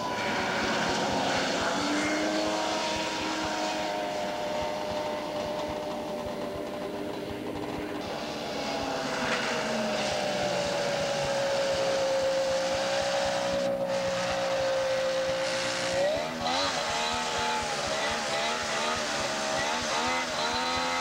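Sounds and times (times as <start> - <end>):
snowmobile engines running: 0.0 - 21.0.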